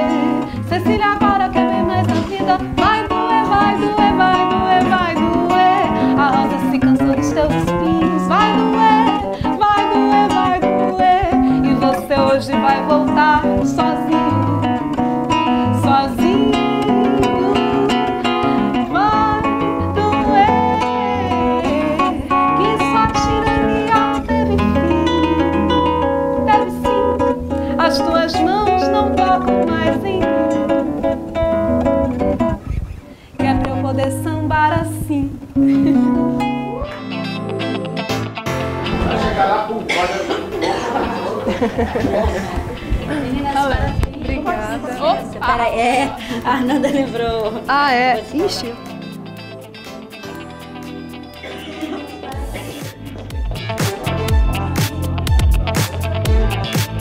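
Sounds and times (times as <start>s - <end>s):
woman singing: 0.0s - 31.1s, 33.4s - 37.2s, 43.0s - 49.0s, 51.6s - 53.0s
classical guitar playing: 0.0s - 57.0s.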